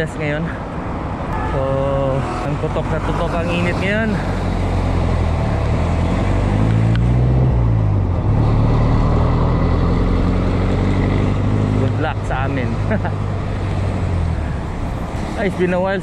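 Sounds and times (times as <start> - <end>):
wind and road noise: 0.0 - 16.0.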